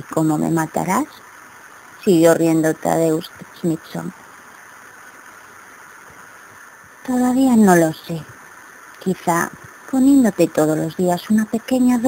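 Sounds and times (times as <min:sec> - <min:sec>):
background hiss: 0:00.0 - 0:12.0
faint high steady tones: 0:00.0 - 0:12.0
person speaking: 0:07.0 - 0:08.3.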